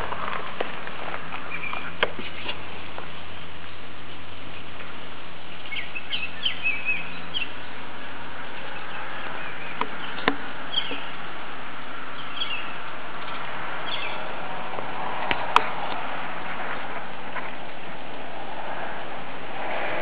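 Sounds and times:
steady background hiss: 0:00.0 - 0:20.0
small birds chirping: 0:01.0 - 0:11.3, 0:12.1 - 0:14.4.

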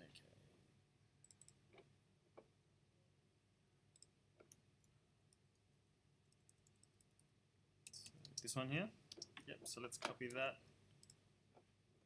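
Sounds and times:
computer mouse clicks: 0:01.2 - 0:01.9, 0:03.9 - 0:05.6, 0:09.1 - 0:09.4, 0:11.0 - 0:11.2.

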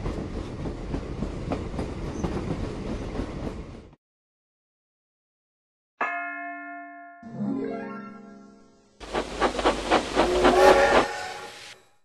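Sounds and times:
steam locomotive exhaust chuffs: 0:09.0 - 0:11.8
multi-tone steam whistle: 0:10.2 - 0:11.8.

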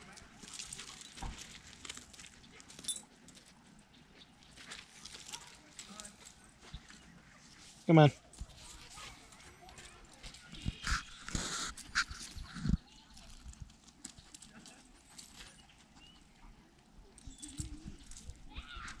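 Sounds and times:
dog paws scuffing on gravel: 0:00.0 - 0:03.5.

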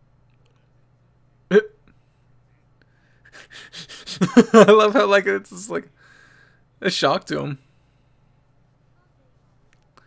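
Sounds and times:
faint low hum: 0:00.0 - 0:10.0
man's stifled laugh: 0:03.3 - 0:05.1.

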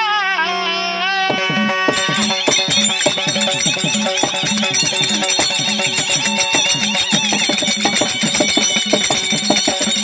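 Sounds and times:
barrel drum played by hand: 0:01.3 - 0:10.0
held melodic tones: 0:01.3 - 0:10.0
metallic ringing: 0:01.3 - 0:10.0.

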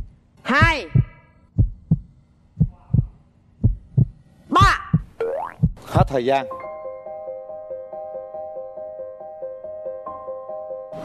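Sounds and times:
heartbeat double thump: 0:00.0 - 0:06.1.

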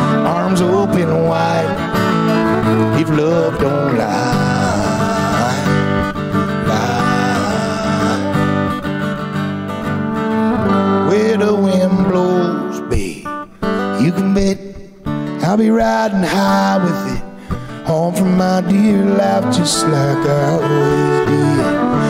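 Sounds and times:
fiddle sliding lines: 0:00.0 - 0:08.6, 0:19.2 - 0:22.0
strummed acoustic guitar: 0:00.0 - 0:22.0.

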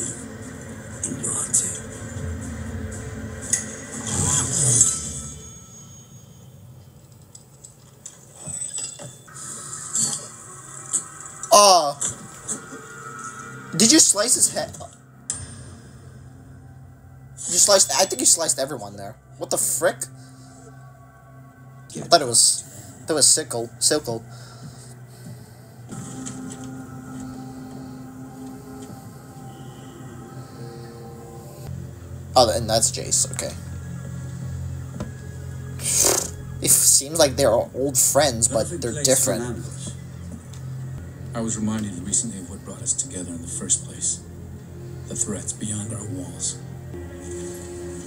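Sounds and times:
dramatic soundtrack music: 0:00.0 - 0:06.0, 0:09.3 - 0:48.0
low drone of held tones: 0:10.5 - 0:48.0.

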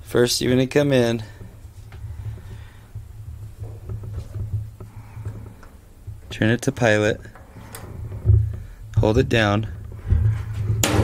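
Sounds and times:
low uneven rumble: 0:00.0 - 0:10.9.

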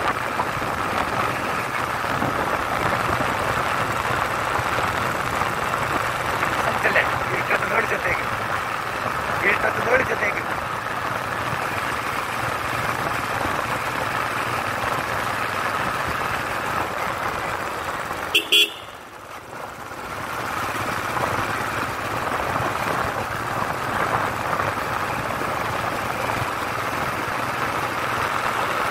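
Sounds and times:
wind noise: 0:00.0 - 0:07.4, 0:12.4 - 0:14.2
motorcycle engine: 0:00.0 - 0:28.9
horn toots: 0:18.3 - 0:19.1.

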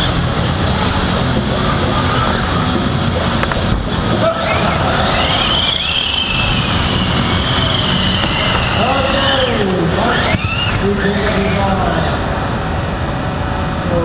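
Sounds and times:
hall noise: 0:00.0 - 0:14.0
high wavering whine: 0:00.0 - 0:14.0
voice: 0:08.7 - 0:12.3.

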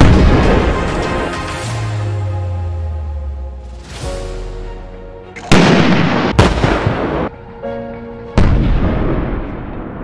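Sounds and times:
background music: 0:00.0 - 0:10.0
heavy blasts with rumbling tails: 0:05.5 - 0:07.3.

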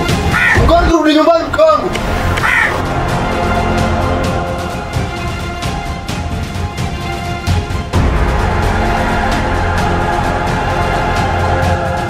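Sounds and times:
film background music: 0:00.0 - 0:12.0
crow cawing: 0:00.3 - 0:00.6, 0:02.4 - 0:02.8.

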